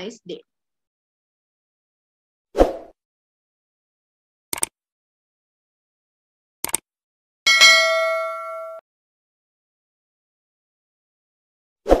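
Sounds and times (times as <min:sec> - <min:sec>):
notification bell ding: 0:07.5 - 0:08.8.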